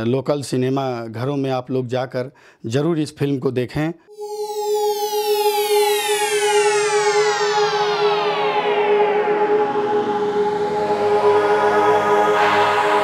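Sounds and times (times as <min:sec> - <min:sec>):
synth drone: 0:04.1 - 0:13.0
synthesized tone sweep: 0:04.1 - 0:13.0.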